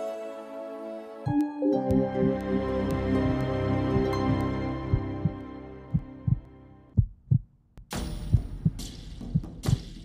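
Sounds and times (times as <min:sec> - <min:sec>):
music chord: 0:00.0 - 0:06.8
heartbeat thumps: 0:01.9 - 0:09.8.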